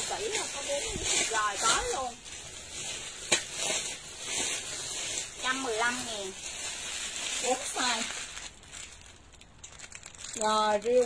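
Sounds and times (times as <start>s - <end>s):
plastic packaging crinkling: 0.0s - 11.0s.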